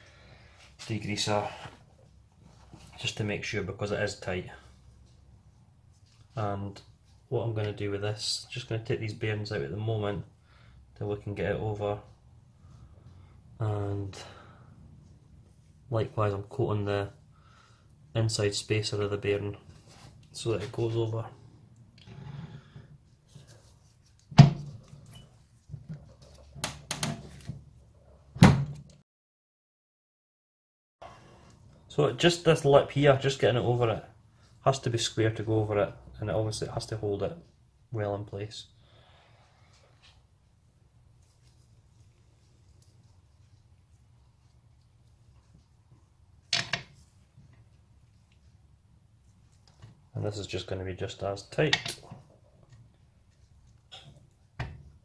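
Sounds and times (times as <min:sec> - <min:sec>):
metal handling noise: 0:46.5 - 0:47.0.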